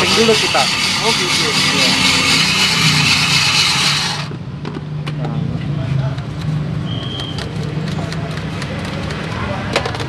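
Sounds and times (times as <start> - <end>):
ice shaver grinding ice: 0.0 - 4.3.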